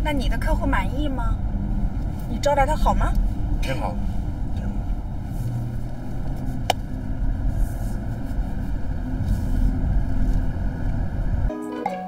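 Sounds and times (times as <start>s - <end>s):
car cabin road and engine noise: 0.0s - 11.5s.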